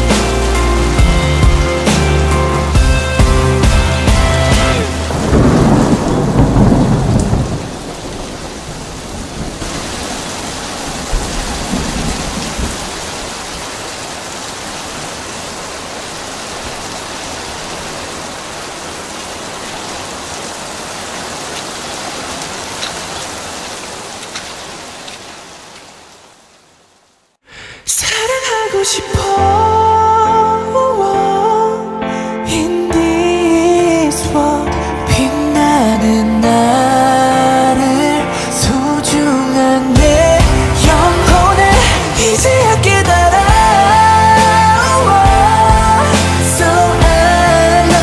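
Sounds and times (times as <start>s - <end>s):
thunder rumble: 0.0s - 13.6s
heavy rain falling: 0.0s - 27.4s, 35.2s - 48.0s.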